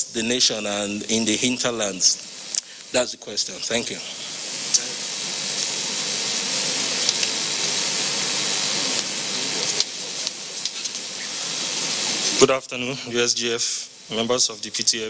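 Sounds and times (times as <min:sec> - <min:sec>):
steady loud hiss: 0:00.0 - 0:15.0.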